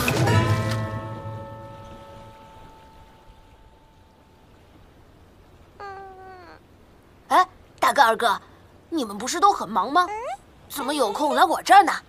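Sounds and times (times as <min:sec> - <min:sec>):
young voice calling out: 0:05.7 - 0:08.2, 0:09.6 - 0:11.9.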